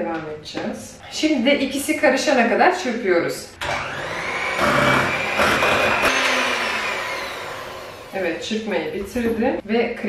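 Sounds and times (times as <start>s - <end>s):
electric hand mixer whine: 3.6s - 8.6s.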